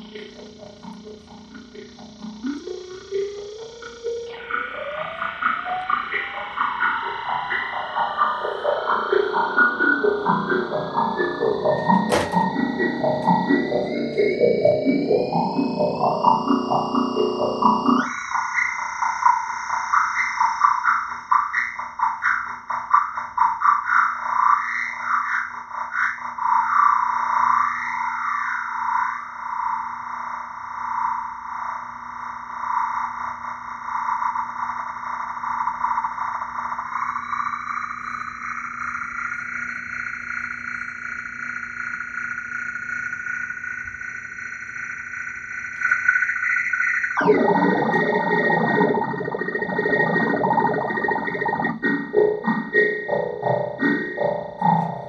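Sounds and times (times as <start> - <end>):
electronic stepping tone: 0.0 - 18.1, 47.0 - 55.0
warbling electronic drone: 0.0 - 31.8, 32.5 - 55.0.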